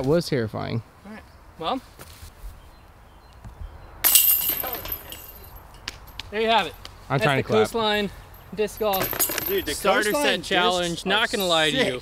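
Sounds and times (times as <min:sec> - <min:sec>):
glass shattering: 0:04.0 - 0:05.6, 0:08.8 - 0:10.2.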